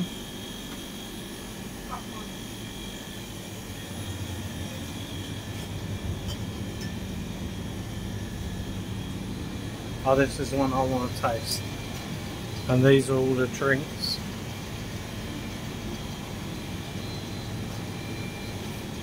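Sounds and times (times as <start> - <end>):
refrigerator chillers humming: 0.0 - 19.0.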